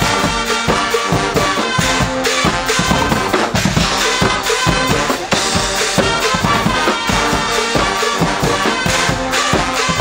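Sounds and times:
brass band playing: 0:00.0 - 0:10.0
drum kit beat: 0:00.0 - 0:10.0.

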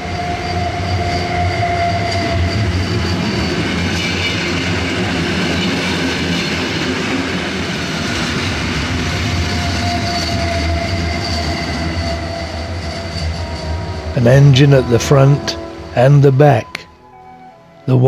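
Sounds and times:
train wheels rumbling on rails: 0:00.0 - 0:16.9
wheel squealing: 0:09.0 - 0:17.1.

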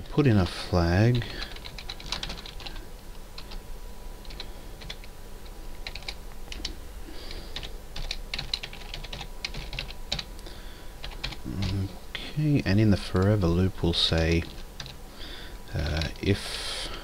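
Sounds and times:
computer keyboard typing: 0:01.4 - 0:02.8, 0:04.2 - 0:05.1, 0:05.8 - 0:06.7, 0:07.6 - 0:10.3, 0:11.0 - 0:11.8, 0:14.1 - 0:15.0.

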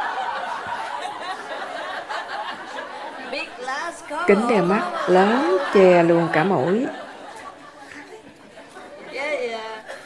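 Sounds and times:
faint audience chatter: 0:00.0 - 0:10.0.

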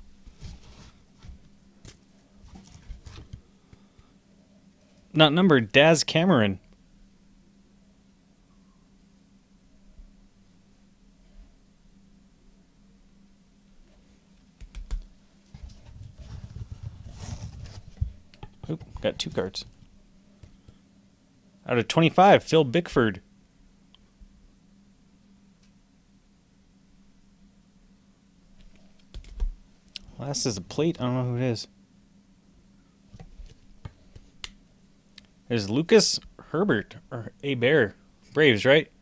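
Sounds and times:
cardboard box rustling: 0:00.2 - 0:01.4, 0:15.6 - 0:18.2.

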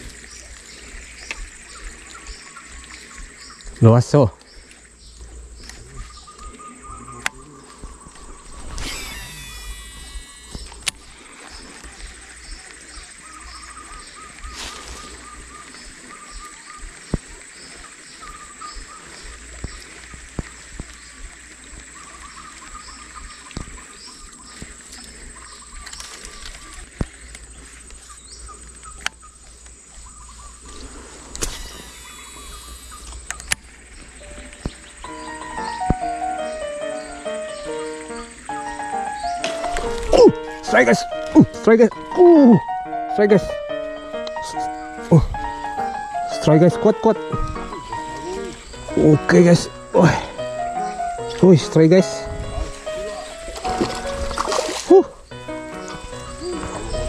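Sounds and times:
bird calls: 0:00.0 - 0:57.0
insect calls: 0:00.0 - 0:57.0
fishing reel braking whine: 0:08.7 - 0:11.0, 0:31.4 - 0:33.2
reel clicks: 0:31.3 - 0:33.7
music: 0:34.3 - 0:57.0.

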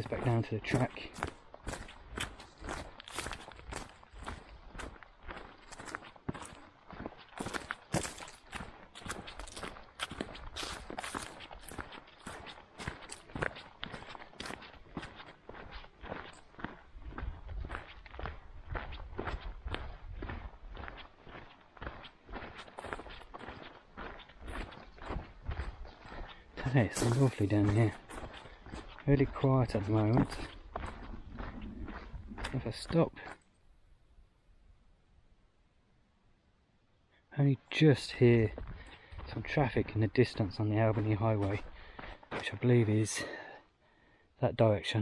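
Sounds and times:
footsteps on leafy dirt track: 0:00.0 - 0:33.6, 0:37.7 - 0:44.2.

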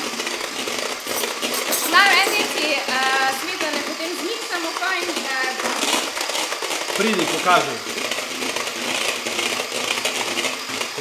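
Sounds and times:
electric hand mixer whirring: 0:00.0 - 0:11.0.

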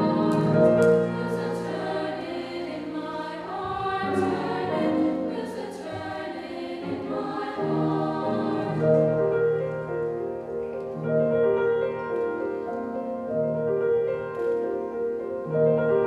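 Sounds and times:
choir singing sustained chords: 0:00.0 - 0:09.8
grand piano: 0:00.0 - 0:16.0.

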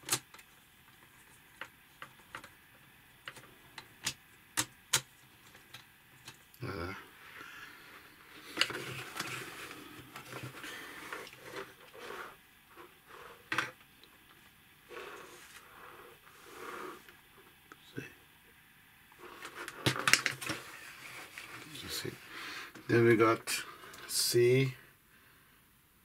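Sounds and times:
plastic parts clicking: 0:03.2 - 0:06.4.

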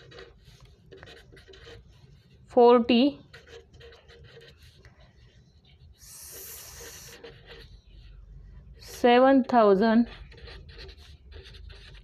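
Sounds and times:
pen scratching on paper: 0:00.0 - 0:02.5, 0:03.1 - 0:08.2, 0:09.8 - 0:12.0.

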